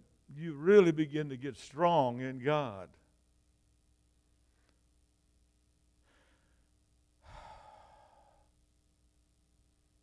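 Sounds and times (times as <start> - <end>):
man breathing: 6.0 - 8.6
sigh-like exhale: 7.2 - 8.5.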